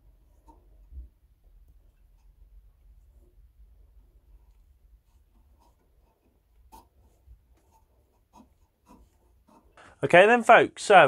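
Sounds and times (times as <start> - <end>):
hand rubbing wood: 0.0 - 9.8.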